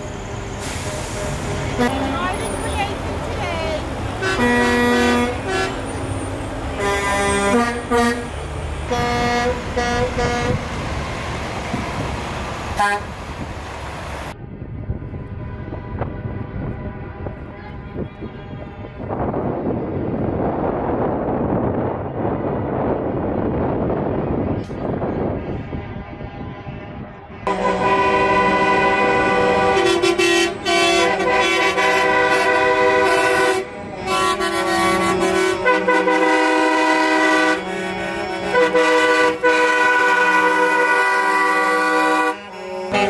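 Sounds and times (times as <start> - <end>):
truck air horns blasting: 0.0 - 2.9, 4.2 - 10.8, 12.7 - 13.2, 15.3 - 19.3, 25.2 - 43.0
traffic rumble: 0.0 - 43.0.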